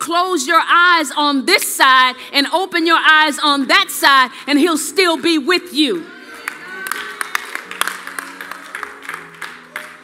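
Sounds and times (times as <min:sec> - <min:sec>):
hand claps: 0:06.4 - 0:10.0.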